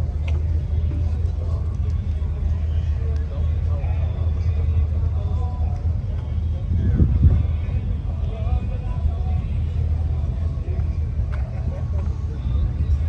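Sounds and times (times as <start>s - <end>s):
indistinct talking: 0.0s - 13.0s
steady low rumble: 0.0s - 13.0s.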